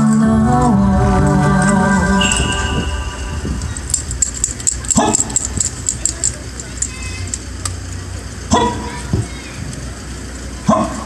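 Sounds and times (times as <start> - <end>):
low street rumble: 0.0 - 11.0
high-pitched clicks and jingles: 2.2 - 7.5.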